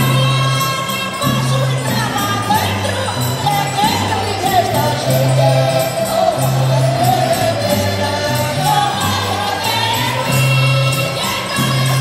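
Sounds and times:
accordion: 0.0s - 12.0s
jingling percussion beat: 0.0s - 12.0s
group singing together: 4.6s - 12.0s.

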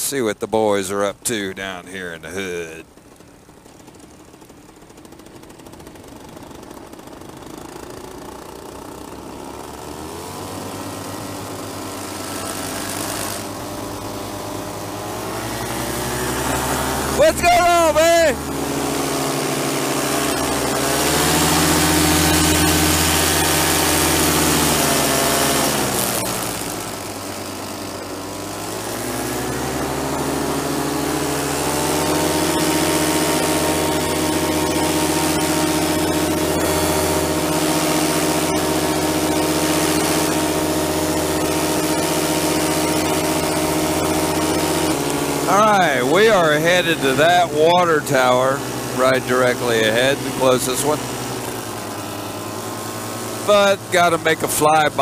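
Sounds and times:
paramotor engine and propeller: 0.0s - 55.0s.

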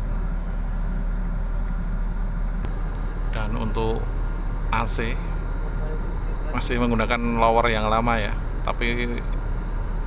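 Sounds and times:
coach engine and air conditioning rumble: 0.0s - 10.0s.

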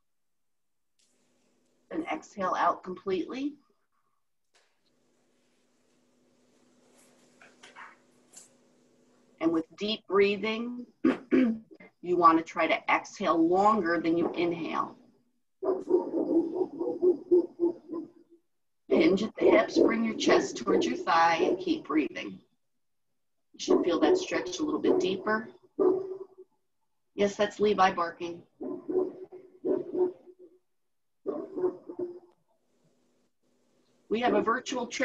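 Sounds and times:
dog barking: 15.6s - 18.1s, 19.4s - 21.7s, 23.6s - 25.2s, 25.8s - 26.3s, 28.6s - 30.3s, 31.3s - 32.3s.

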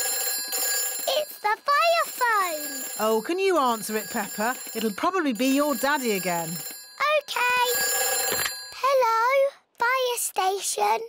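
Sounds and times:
cartoon telephone bell ringing: 0.0s - 9.4s
cartoon character's voice: 1.1s - 4.0s, 7.0s - 7.8s.

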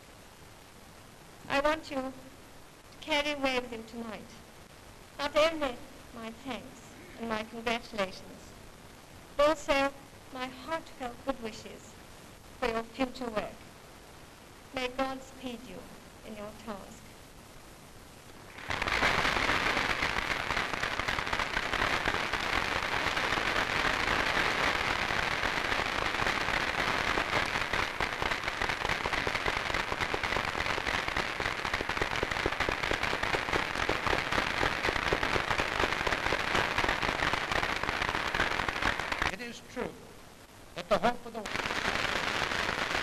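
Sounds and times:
audience applauding: 18.5s - 23.4s.

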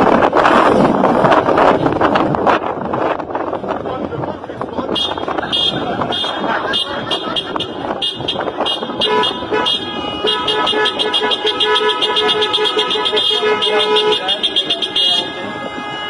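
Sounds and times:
car horns honking: 4.9s - 16.0s.

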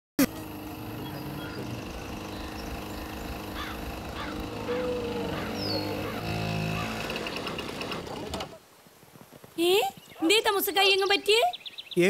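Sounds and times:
scooter engine running: 0.2s - 8.6s
birds chirping: 0.2s - 12.0s.

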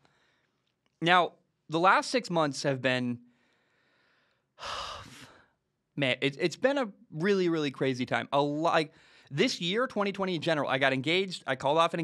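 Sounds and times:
man sighing heavily: 4.6s - 5.5s.

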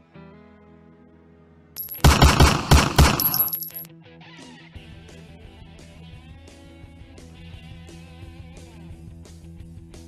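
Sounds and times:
submachine gun burst: 1.8s - 3.8s.

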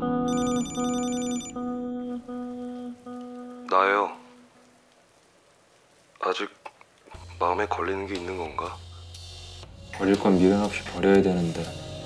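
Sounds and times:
soft background music: 0.0s - 4.7s, 7.1s - 12.0s
telephone ringing: 0.3s - 1.7s.

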